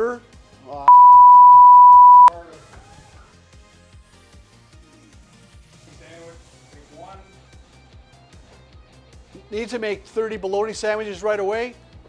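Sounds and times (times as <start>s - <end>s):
censor bleep tone: 0.9s - 2.3s.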